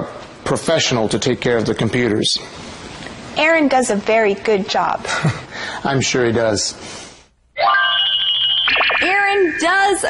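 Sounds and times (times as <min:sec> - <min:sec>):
bell-like transition jingle: 0:07.6 - 0:09.6.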